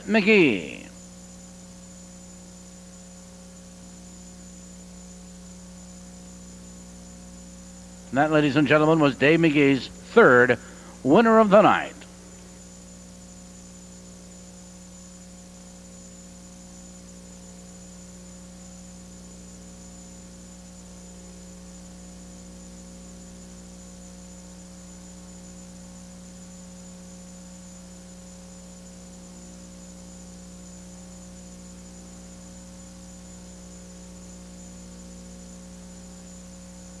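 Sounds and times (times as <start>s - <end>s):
electrical mains hum: 0.0s - 37.0s
faint high whine: 0.0s - 37.0s.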